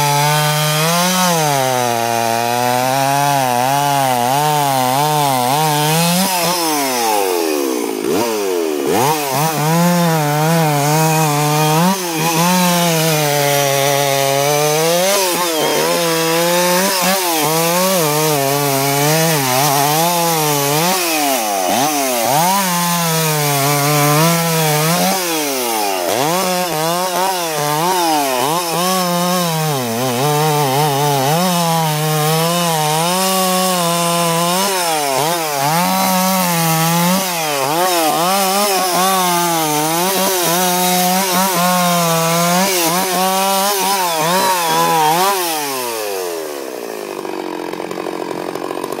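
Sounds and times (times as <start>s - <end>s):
chainsaw cutting log: 0.0s - 49.0s.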